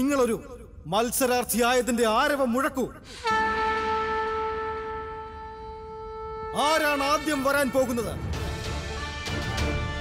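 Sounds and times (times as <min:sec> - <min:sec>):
long horn-like note: 0:03.2 - 0:06.6.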